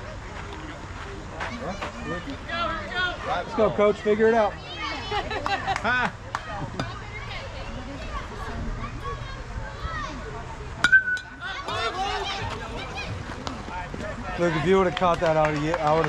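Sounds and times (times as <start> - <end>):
metal bat pinging a ball: 10.8 - 11.8.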